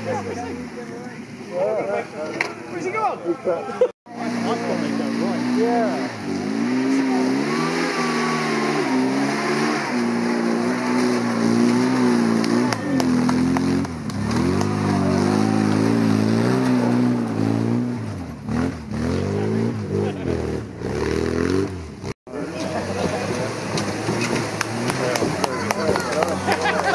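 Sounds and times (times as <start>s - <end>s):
car engine revving hard: 4.1s - 26.9s.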